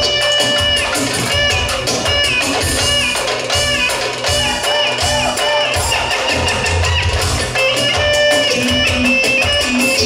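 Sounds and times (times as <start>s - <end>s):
bass and drum beat: 0.0s - 10.0s
clarinet melody: 0.0s - 10.0s.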